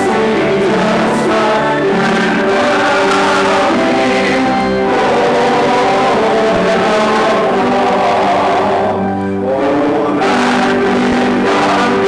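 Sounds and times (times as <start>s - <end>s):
church hymn sung and played: 0.0s - 12.0s.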